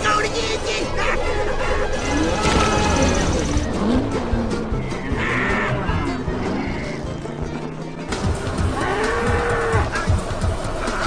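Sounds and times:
cartoon mooing bellow: 2.0 - 3.5, 5.1 - 7.2, 8.7 - 10.1.

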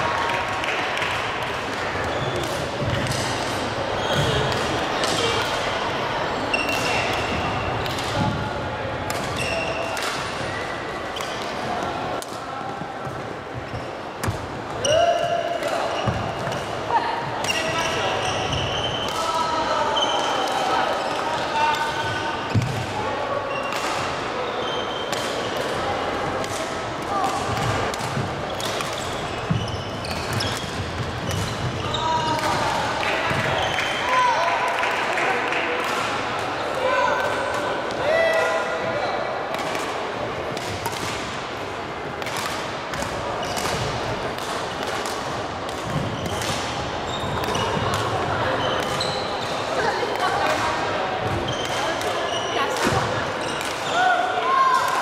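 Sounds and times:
indistinct chatter: 0.0 - 55.0.

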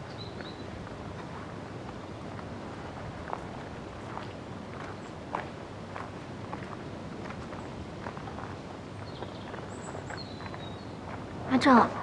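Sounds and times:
steady background hiss: 0.0 - 12.0
footsteps walking: 0.8 - 8.6.

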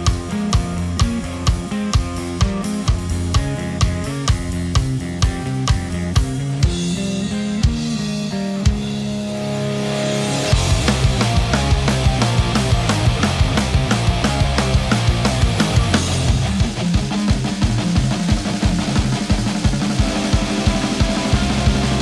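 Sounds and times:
drum beat: 0.0 - 9.0, 10.5 - 22.0
clean guitar: 0.0 - 22.0
heavy guitars: 0.0 - 22.0.

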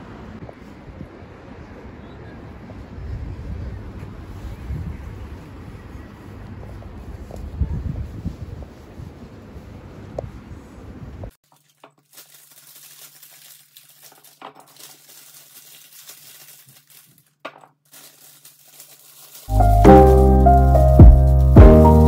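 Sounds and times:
wind buffeting microphone: 2.5 - 11.3
plastic packaging crinkling: 11.4 - 22.0
lofi piano music: 19.5 - 22.0.

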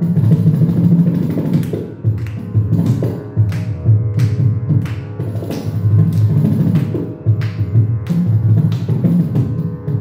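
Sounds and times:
frame drum: 0.0 - 10.0
percussion ensemble drumming: 0.0 - 10.0.

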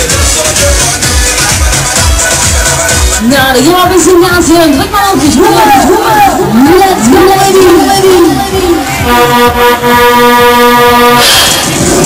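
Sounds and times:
pulsing music beat: 0.0 - 12.0
fairground ride horn: 7.2 - 12.0
siren effect: 11.0 - 12.0.

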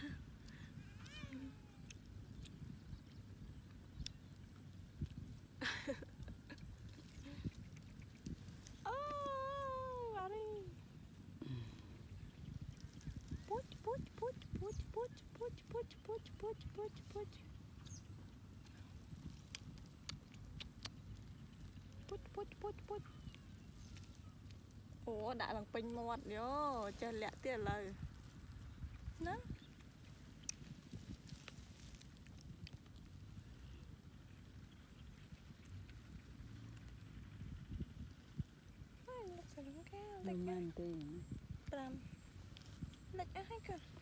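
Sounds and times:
low rumbling noise: 0.0 - 44.0.

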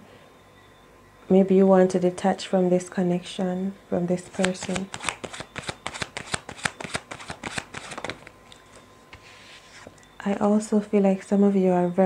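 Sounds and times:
playing cards shuffled by hand: 4.3 - 8.3.

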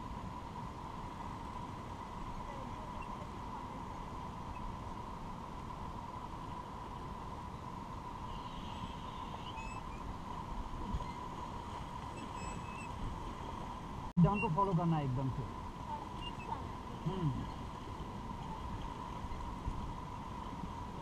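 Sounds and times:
river current rushing: 0.0 - 21.0.

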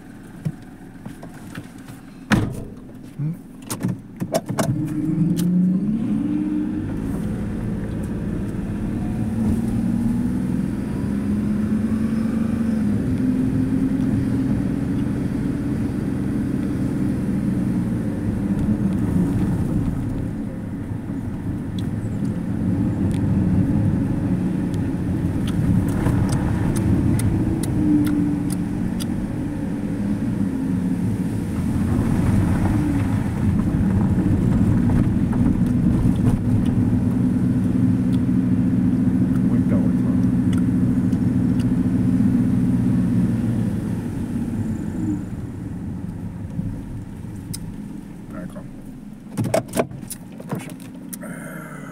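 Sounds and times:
car engine revving: 0.0 - 51.9.

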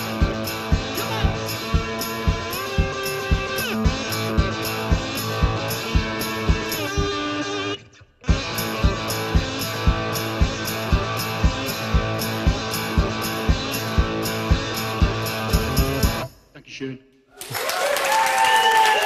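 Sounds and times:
low thud beat: 0.0 - 7.2, 8.3 - 16.4
blues guitar song: 0.0 - 16.3
audience applauding: 17.4 - 19.0.

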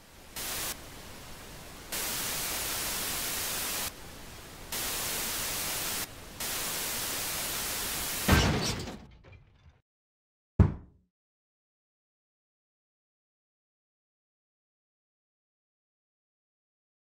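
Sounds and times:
television static hiss: 0.0 - 8.3.

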